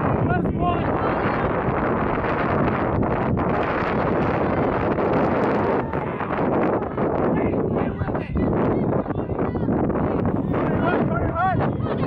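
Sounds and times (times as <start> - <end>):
wind buffeting microphone: 0.0 - 12.0
players shouting: 0.2 - 1.8, 4.1 - 12.0.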